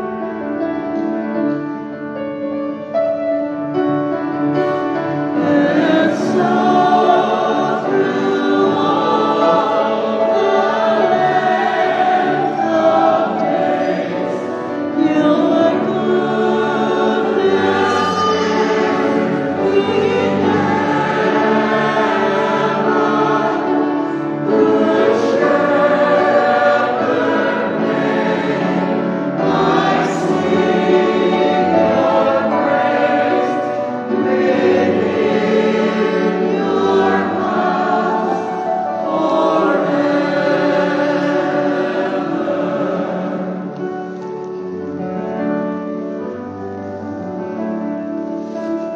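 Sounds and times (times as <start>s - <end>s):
choir singing a hymn: 0.0s - 48.9s.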